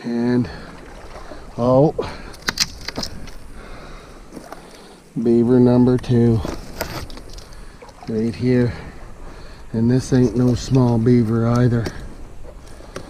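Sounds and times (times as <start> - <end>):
boots wading through water: 0.4 - 5.2, 5.9 - 13.0
sharp clicks or splashes: 0.6 - 3.7
man making wordless sounds: 1.5 - 2.3, 9.7 - 12.0.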